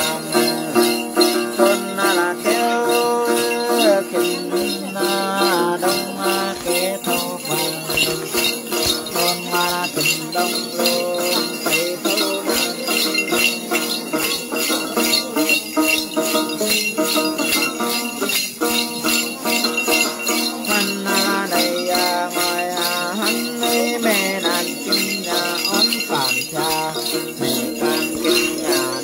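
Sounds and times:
plucked lute melody: 0.0 - 25.0
jingle bells shaken: 0.0 - 29.0.

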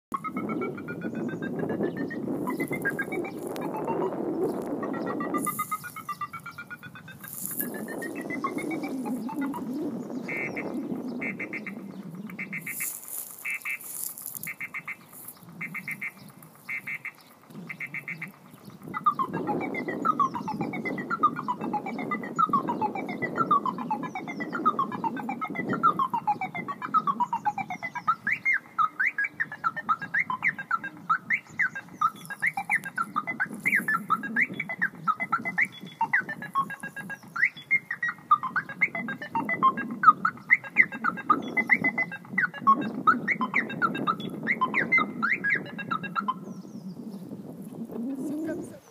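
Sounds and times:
car alarm siren: 0.1 - 46.5.

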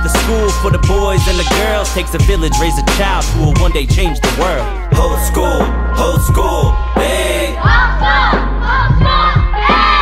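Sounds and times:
hip-hop beat with bass: 0.0 - 10.0.

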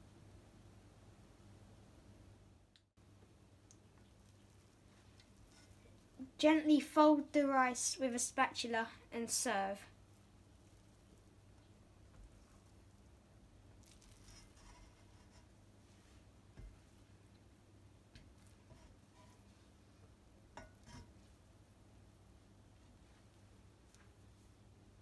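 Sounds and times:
spatula scraping rice in pot: 5.2 - 5.8, 13.8 - 16.0, 18.4 - 19.6.

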